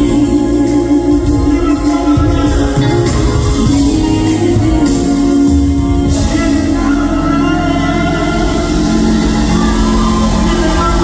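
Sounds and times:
live band music through pa: 0.0 - 11.0.

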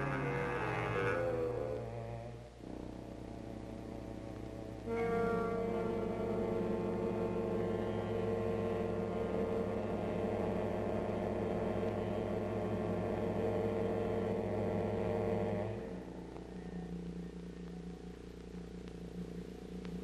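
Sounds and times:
suspense film score drone: 0.0 - 20.0.

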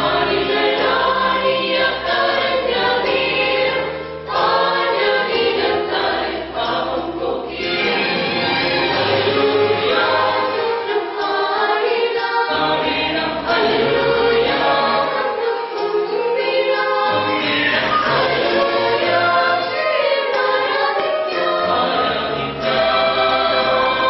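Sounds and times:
mixed choir singing a carol: 0.0 - 24.0.

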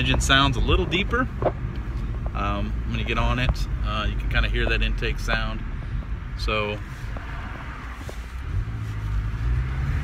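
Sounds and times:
car engine under throttle: 0.0 - 10.0.

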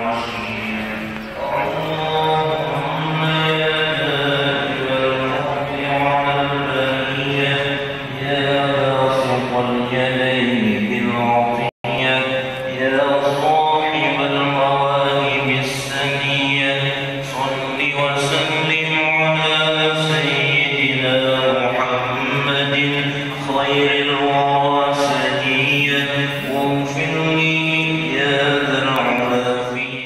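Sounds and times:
melodic prayer chanting: 0.0 - 30.0.

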